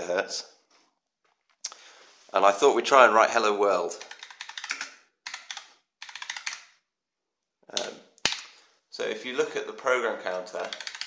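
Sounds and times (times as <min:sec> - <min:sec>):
computer keyboard keys clicking: 0:04.0 - 0:06.7, 0:10.3 - 0:11.0.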